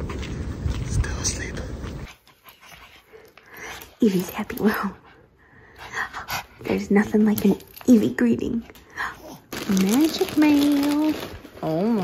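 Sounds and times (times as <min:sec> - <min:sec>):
small dog panting: 0:01.8 - 0:07.2.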